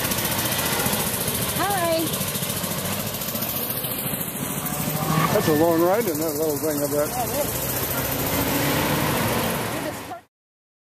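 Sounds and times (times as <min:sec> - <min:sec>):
minivan driving past: 0:00.0 - 0:10.3
road traffic noise: 0:00.0 - 0:10.3.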